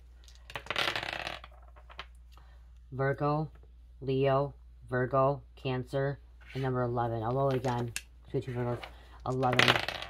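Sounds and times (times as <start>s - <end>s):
dice clattering on wooden table: 0.2s - 2.2s, 7.4s - 10.0s.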